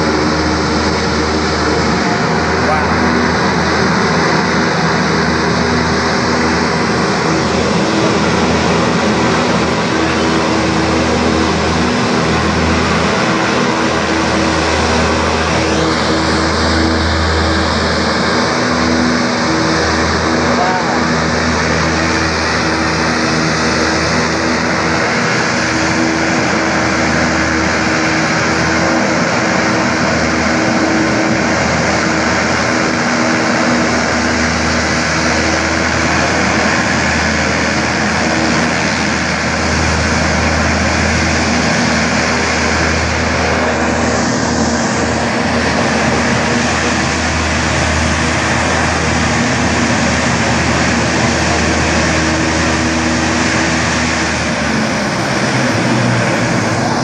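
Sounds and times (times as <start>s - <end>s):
hovercraft running at full power: 0.0s - 57.0s
low hums: 0.0s - 57.0s.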